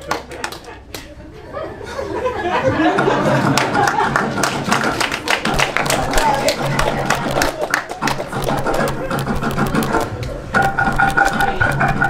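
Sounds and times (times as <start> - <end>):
sharp irregular taps or claps: 3.5 - 12.0
faint voices: 5.5 - 12.0.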